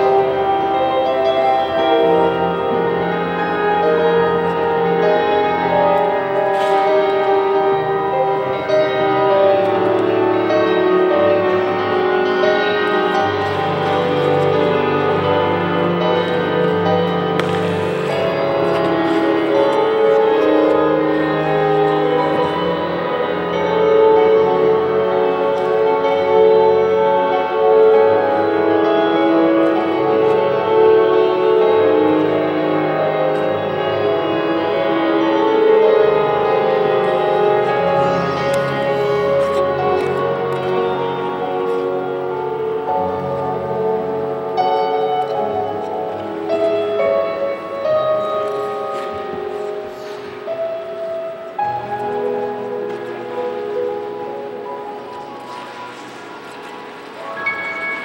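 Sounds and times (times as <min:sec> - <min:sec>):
instrumental music sustained notes: 0:00.0 - 0:58.0.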